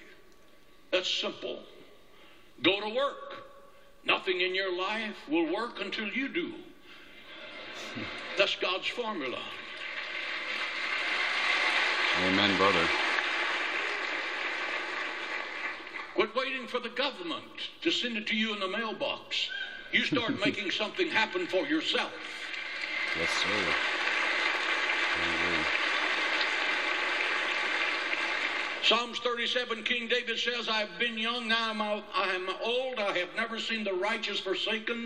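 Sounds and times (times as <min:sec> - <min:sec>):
crowd applauding: 0:07.7 - 0:16.2, 0:22.2 - 0:28.9.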